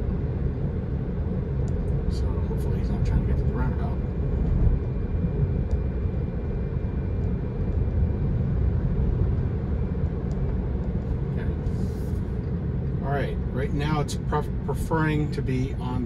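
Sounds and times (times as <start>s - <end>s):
road and tyre rumble: 0.0s - 16.0s.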